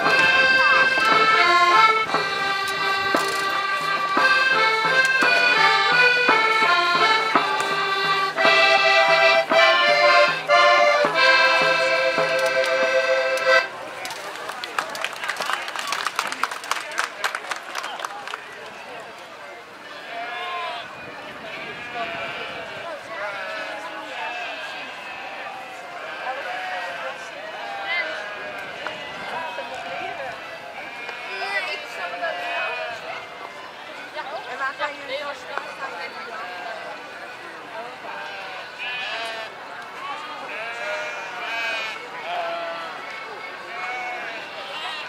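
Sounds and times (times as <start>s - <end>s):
background chatter: 0.0s - 45.0s
people talking: 0.0s - 45.0s
sheep bleating: 21.6s - 33.1s, 38.1s - 39.5s, 40.2s - 43.0s, 43.7s - 45.0s.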